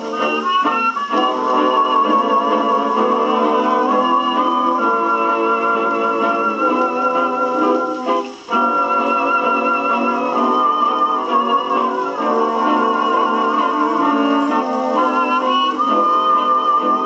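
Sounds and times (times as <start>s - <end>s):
jazz dance band on gramophone: 0.0s - 17.0s.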